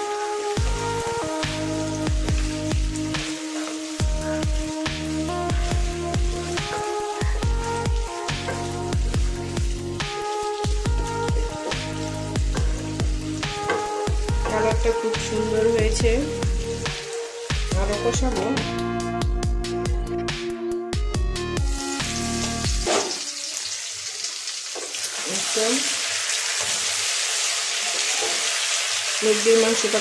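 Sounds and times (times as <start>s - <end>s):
food sizzling in a wok: 0.0s - 19.8s, 21.4s - 30.0s
background music with beat: 0.0s - 23.0s.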